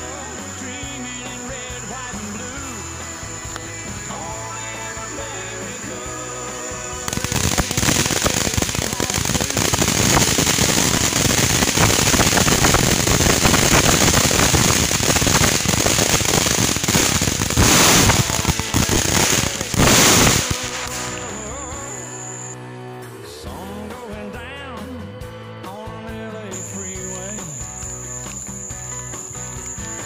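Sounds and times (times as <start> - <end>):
fireworks crackling: 0.0 - 22.6, 26.6 - 30.0
fireworks hissing bursts: 0.0 - 22.6, 26.6 - 30.0.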